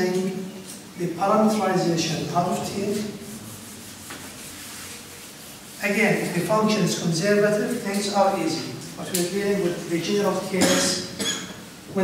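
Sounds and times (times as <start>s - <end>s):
eraser wiping whiteboard: 2.4s - 8.6s.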